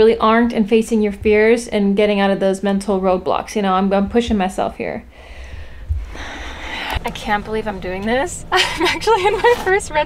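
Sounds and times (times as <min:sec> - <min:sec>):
person exhaling noisily: 0:05.2 - 0:07.0
soft low thump: 0:05.5 - 0:06.4.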